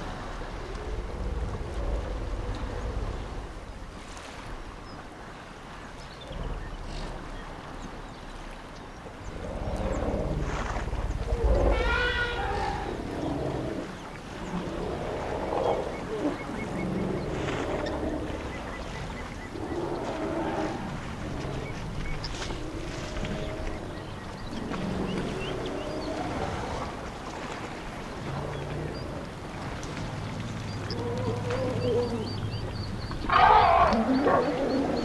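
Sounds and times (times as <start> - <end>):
elephants trumpeting and squealing: 11.4 - 13.0, 33.3 - 35.0.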